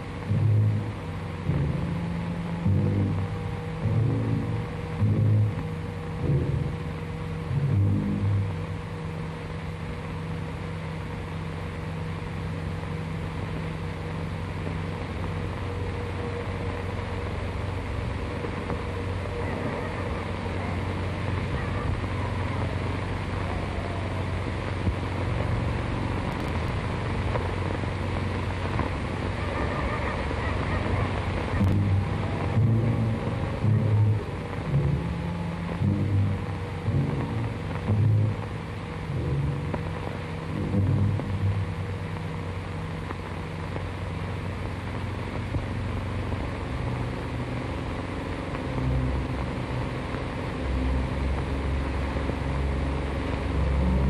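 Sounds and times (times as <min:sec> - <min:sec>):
optical soundtrack hiss: 0:00.0 - 0:54.0.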